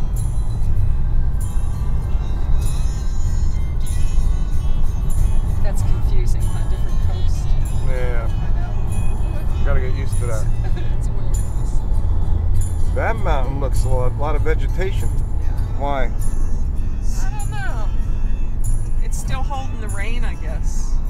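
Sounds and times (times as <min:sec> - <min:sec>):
music playing: 0:00.0 - 0:21.0
road and engine rumble in car: 0:00.0 - 0:21.0.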